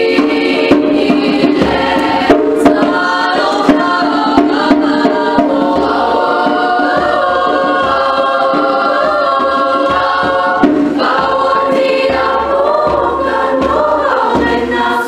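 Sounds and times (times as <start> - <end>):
choir singing unaccompanied: 0.0 - 15.0.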